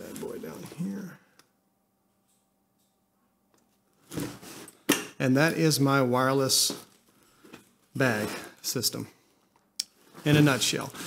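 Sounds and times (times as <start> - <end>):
fabric bag rustle: 10.0 - 11.0.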